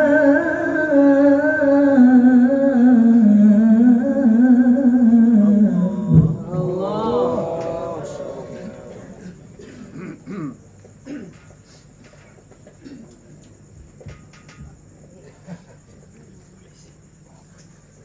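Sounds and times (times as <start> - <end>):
woman's amplified reciting voice: 0.0 - 9.4
cricket trill: 0.0 - 18.0.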